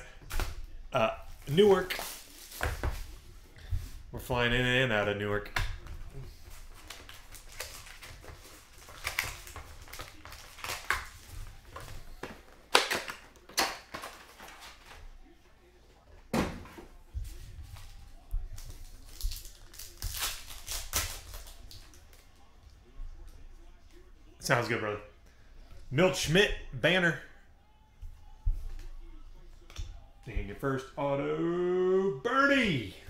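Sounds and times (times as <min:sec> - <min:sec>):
paper wrappers crinkling: 0:01.3 - 0:03.3, 0:06.2 - 0:15.4, 0:17.6 - 0:22.5.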